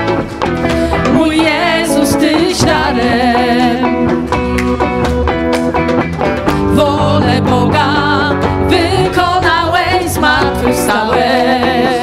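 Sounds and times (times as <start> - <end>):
bass guitar: 0.0 - 12.0
drums: 0.0 - 12.0
electric guitar: 0.0 - 12.0
person singing: 6.6 - 12.0.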